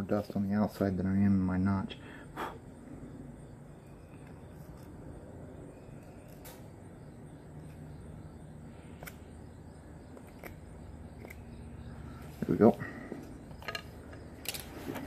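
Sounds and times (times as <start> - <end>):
low steady hum: 0.0 - 15.0
knife clicking on wood: 11.2 - 11.5.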